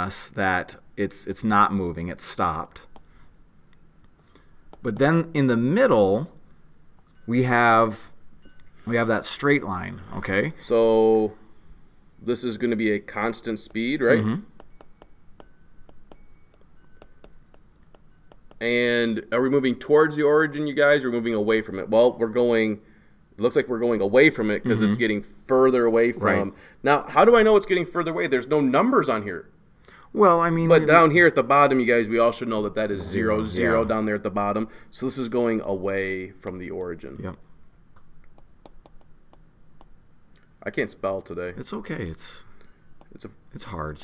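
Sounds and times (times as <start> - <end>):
stylus tapping on tablet: 4.7 - 5.2, 13.6 - 18.6, 38.0 - 40.0.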